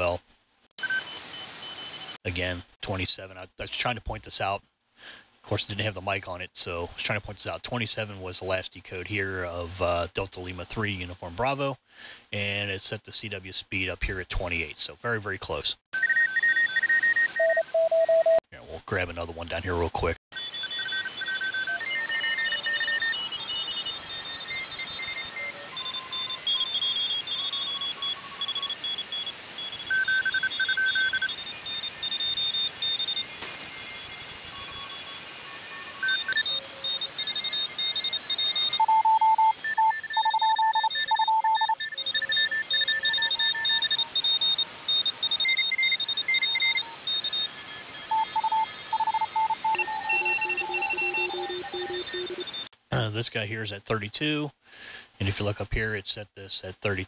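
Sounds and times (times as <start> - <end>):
radio band hiss: 0.0 - 0.2, 2.0 - 15.8, 18.5 - 21.2, 30.5 - 38.6, 43.1 - 57.0
morse code signals: 16.0 - 52.7.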